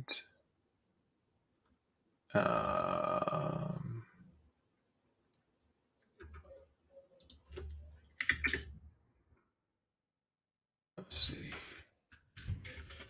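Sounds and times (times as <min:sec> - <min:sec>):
keyboard clicks: 0:07.2 - 0:08.7.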